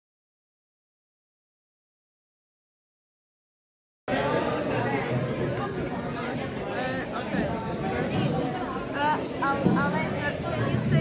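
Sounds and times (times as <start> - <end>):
overlapping chatter of young people: 4.1 - 11.0.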